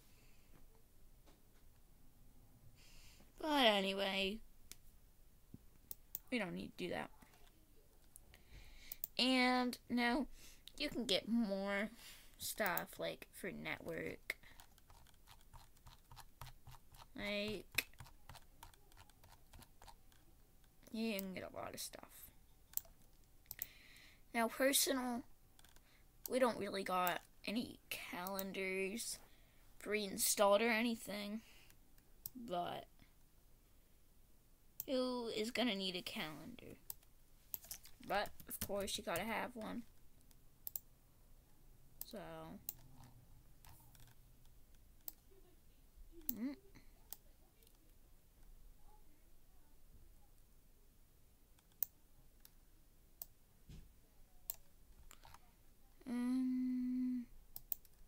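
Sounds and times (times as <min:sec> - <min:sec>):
computer mouse clicks: 0:08.9 - 0:09.2, 0:14.4 - 0:21.3, 0:22.7 - 0:23.7, 0:25.6 - 0:25.9, 0:39.9 - 0:40.9, 0:42.0 - 0:45.2, 0:51.6 - 0:52.6, 0:54.5 - 0:55.4, 0:57.6 - 0:58.0.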